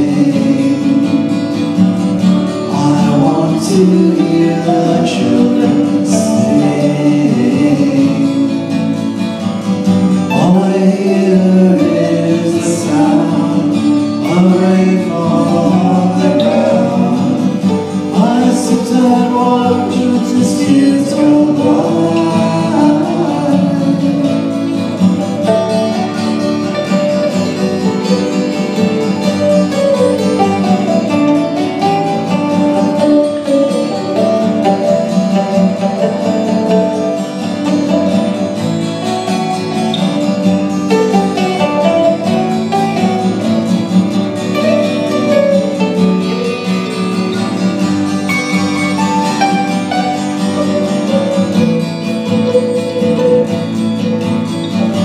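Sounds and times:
mandolin lead: 0.0 - 55.0
strummed acoustic guitar: 0.0 - 55.0.

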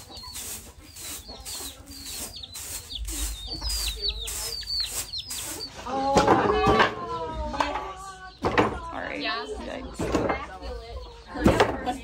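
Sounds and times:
hen clucking: 0.0 - 8.4
chicks peeping: 0.0 - 12.0.

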